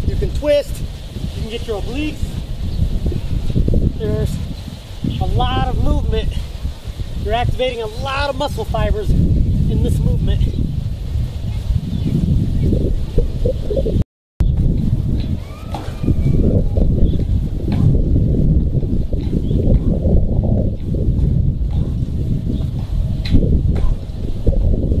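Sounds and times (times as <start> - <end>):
low wind rumble on microphone: 0.0 - 25.0.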